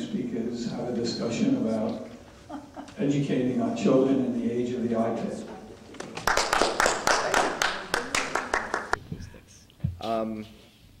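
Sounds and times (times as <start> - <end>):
small audience applauding: 5.9 - 9.0.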